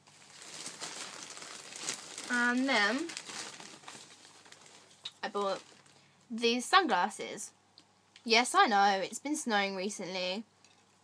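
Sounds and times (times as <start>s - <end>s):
crinkly packaging rustling: 0.0s - 6.3s.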